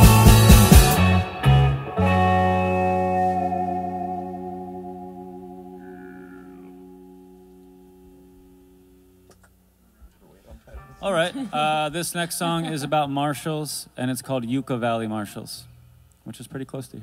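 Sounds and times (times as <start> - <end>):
electric guitar chord ringing: 0.0 - 9.3, 10.7 - 11.8.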